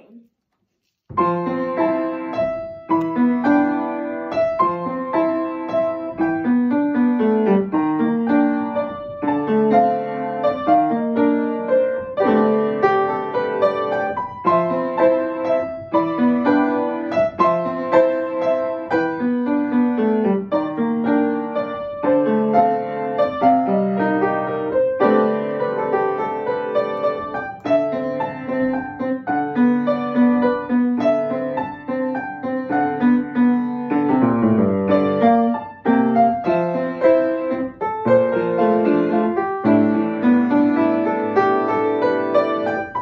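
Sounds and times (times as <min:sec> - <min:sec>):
solo piano piece: 0:00.8 - 0:43.0.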